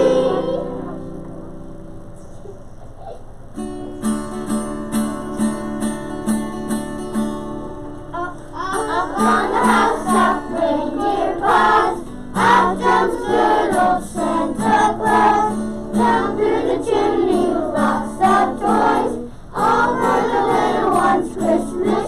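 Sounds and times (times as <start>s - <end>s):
group of voices singing: 0.0s - 1.1s, 8.7s - 22.0s.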